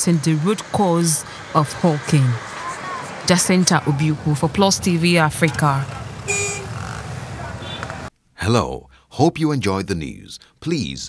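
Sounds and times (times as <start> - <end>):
busy road traffic: 0.0 - 8.1
vehicle horn toot: 6.2 - 6.8, 7.6 - 8.1.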